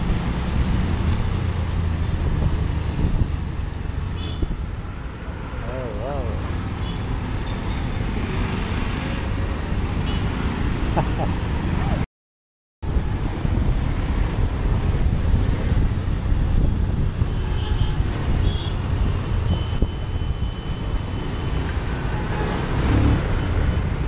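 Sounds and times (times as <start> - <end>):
road and traffic noise: 0.0 - 12.1, 12.8 - 24.0
wind on microphone: 0.8 - 4.7, 12.9 - 24.0.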